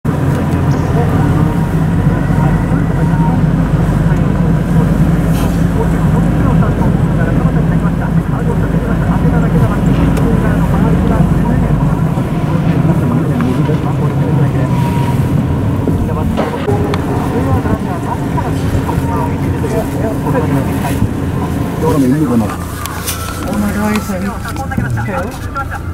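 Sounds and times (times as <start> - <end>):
car engine and road noise: 0.0 - 25.9
deep rumble: 0.0 - 25.9.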